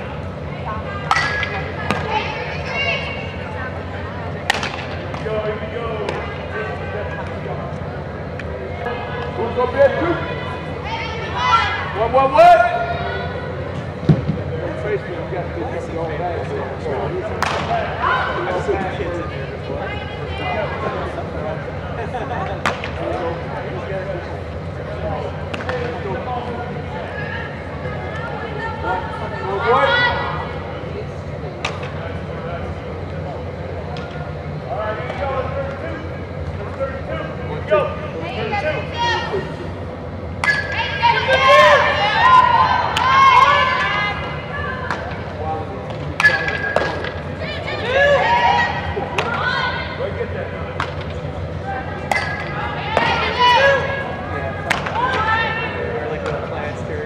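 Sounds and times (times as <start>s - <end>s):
distant shouts and chatter: 0.0s - 57.0s
steady low hum: 0.0s - 57.0s.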